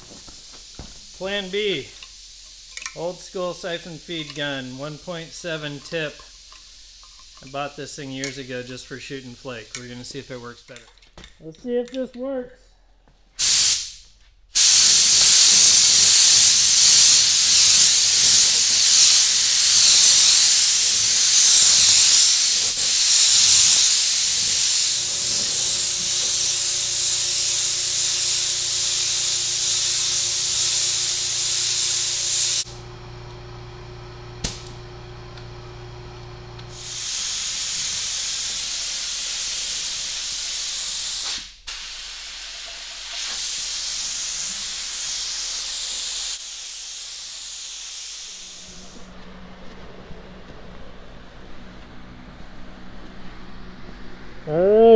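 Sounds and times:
spray gun hissing: 0.0s - 7.8s, 13.4s - 14.0s, 14.6s - 32.8s, 36.7s - 49.2s.

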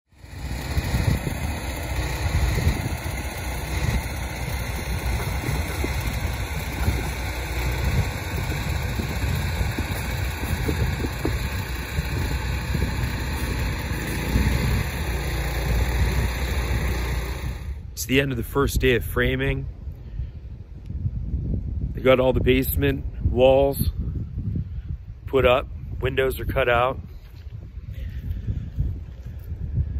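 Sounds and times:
wind buffeting microphone: 0.4s - 29.9s.

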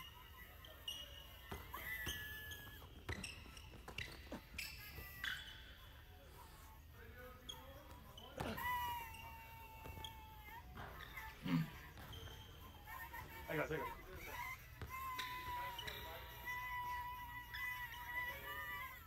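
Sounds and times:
sneakers squeaking: 0.0s - 19.0s.

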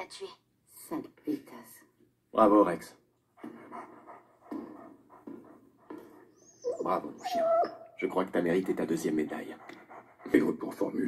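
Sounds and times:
dog panting: 3.4s - 11.0s.

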